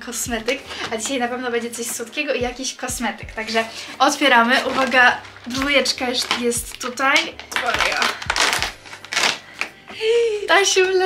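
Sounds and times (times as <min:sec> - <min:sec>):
cardboard tearing and crinkling: 0:03.4 - 0:09.8.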